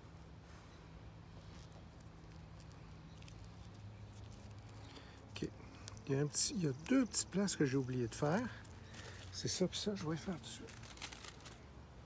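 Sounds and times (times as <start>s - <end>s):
low steady hum: 0.0s - 12.0s
plastic wrap rustling: 1.3s - 11.7s.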